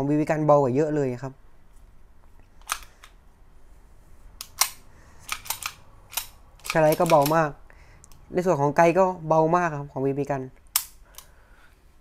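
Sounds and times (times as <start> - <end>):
pistol action clicks: 2.6 - 3.2, 4.4 - 7.4, 10.6 - 11.3.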